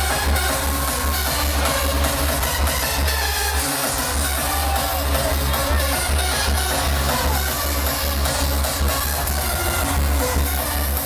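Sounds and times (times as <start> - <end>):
heavy kick-drum beat: 0.0 - 11.0
loud electronic dance music: 0.0 - 11.0.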